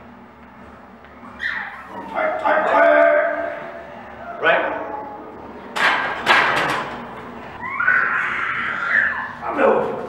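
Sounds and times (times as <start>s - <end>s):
bar and plates rattling: 5.7s - 7.2s.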